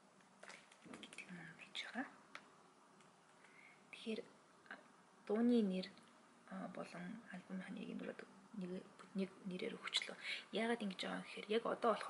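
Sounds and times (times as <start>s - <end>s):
woman whispering: 1.0s - 2.2s, 3.9s - 4.9s, 6.5s - 12.0s.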